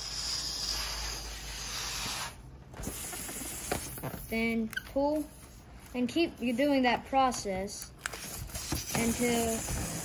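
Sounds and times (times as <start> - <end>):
breath blown into balloon: 0.0 - 3.7.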